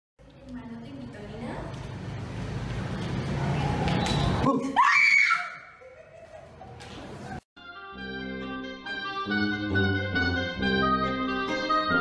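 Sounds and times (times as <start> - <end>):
woman screaming: 4.6 - 5.8.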